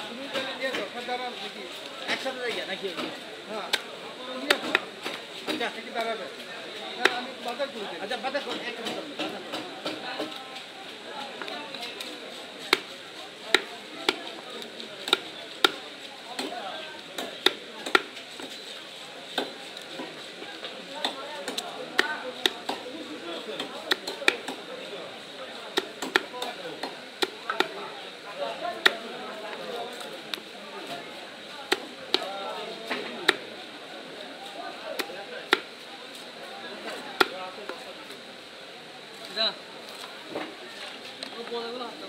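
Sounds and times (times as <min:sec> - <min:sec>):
knife chopping on wooden block: 0:25.8 - 0:27.7.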